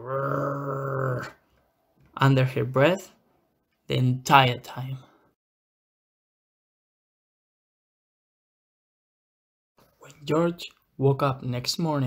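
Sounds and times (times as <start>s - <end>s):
person growling: 0.0s - 1.4s.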